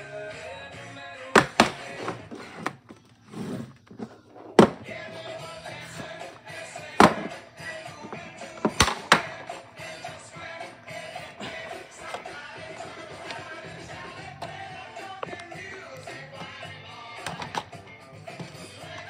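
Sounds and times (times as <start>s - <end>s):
background music: 0.0s - 19.0s
plastic case clicking: 17.2s - 17.7s.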